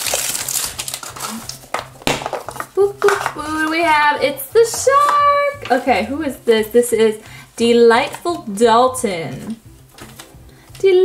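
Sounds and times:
plastic wrapper crinkling: 0:00.0 - 0:06.1, 0:09.3 - 0:10.9.

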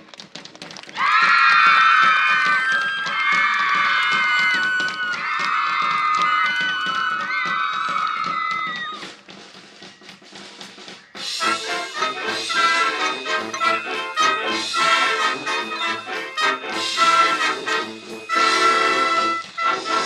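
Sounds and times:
marching band drum beat: 0:01.0 - 0:20.0
loud held brass chords: 0:11.4 - 0:20.0.

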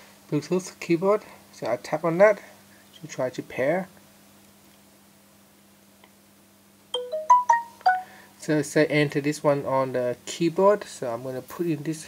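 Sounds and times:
faint steady hum: 0:00.0 - 0:12.0
phone notification chime: 0:07.0 - 0:08.2.

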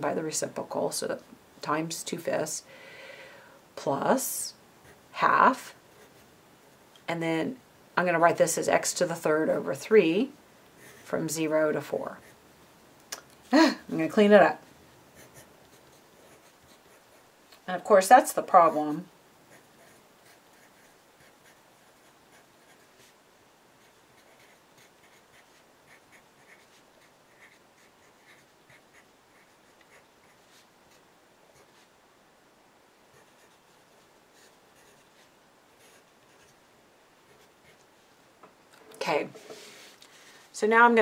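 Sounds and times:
pencil writing on paper: 0:15.2 - 0:17.2, 0:23.8 - 0:31.9, 0:33.1 - 0:33.6, 0:34.4 - 0:36.6.

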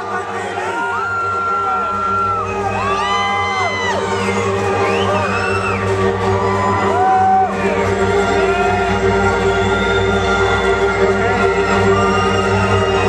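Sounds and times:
audience whooping and cheering: 0:00.0 - 0:13.0.

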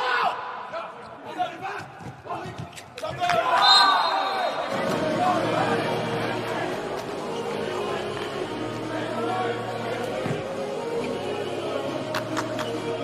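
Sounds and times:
shoe squeaks on court: 0:02.5 - 0:03.1
hum of voices: 0:04.5 - 0:13.0.

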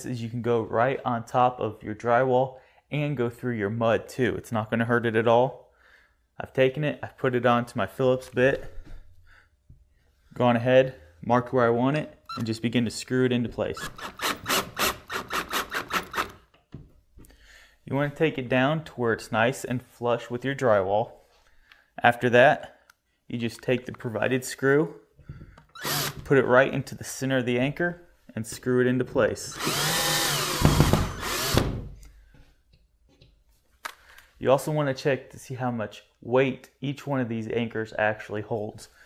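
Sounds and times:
drill driving anchor into drywall: 0:13.8 - 0:16.6, 0:25.8 - 0:26.3, 0:29.5 - 0:32.0
drill motor whine: 0:25.8 - 0:26.2, 0:29.6 - 0:31.7.

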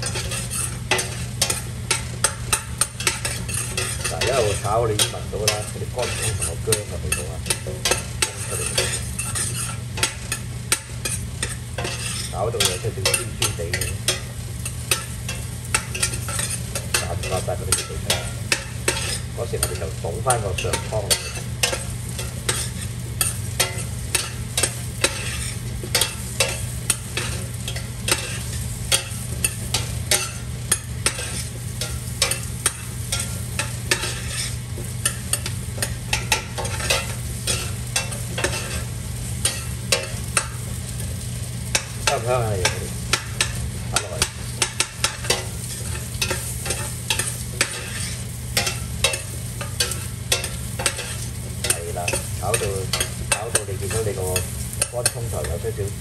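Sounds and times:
metal spoon scraping a pot: 0:00.0 - 0:40.8, 0:41.7 - 0:55.6
shallots sizzling in oil: 0:00.0 - 0:56.0.

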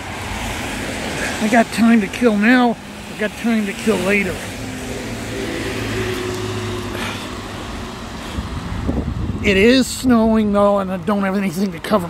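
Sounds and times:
road noise: 0:00.0 - 0:12.0
vehicle engine humming: 0:00.0 - 0:12.0.

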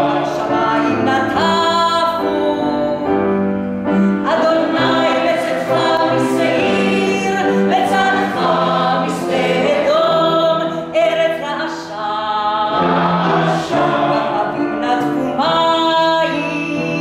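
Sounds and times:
mixed choir singing: 0:00.0 - 0:02.9, 0:04.2 - 0:17.0
woman soloist singing: 0:04.1 - 0:13.0.

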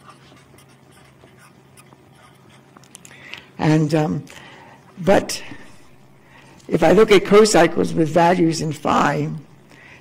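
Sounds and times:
marker pen scratching on paper: 0:00.0 - 0:02.8
low steady hum: 0:00.0 - 0:10.0.

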